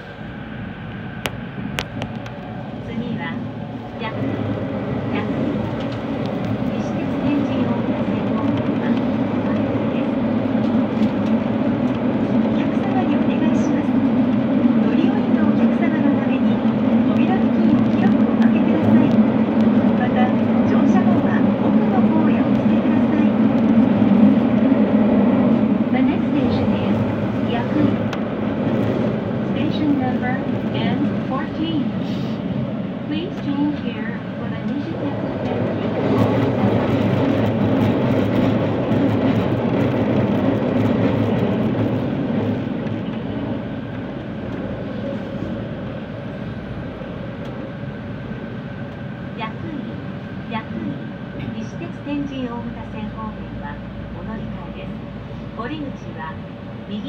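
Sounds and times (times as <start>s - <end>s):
train rumbling through tunnel: 0.0s - 57.0s.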